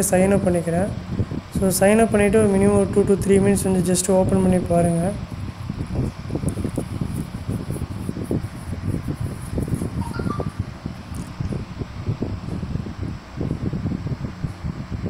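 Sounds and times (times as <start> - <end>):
low fluttering room rumble: 0.0 - 15.0.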